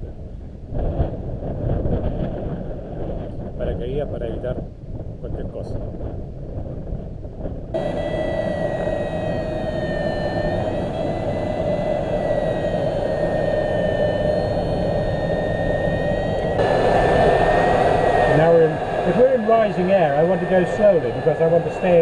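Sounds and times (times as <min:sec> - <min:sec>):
plane engine running: 0:07.8 - 0:22.0.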